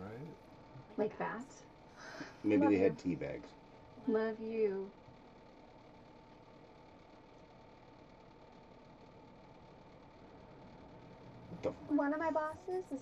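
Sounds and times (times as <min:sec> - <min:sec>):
thin high tone: 0:02.4 - 0:03.3.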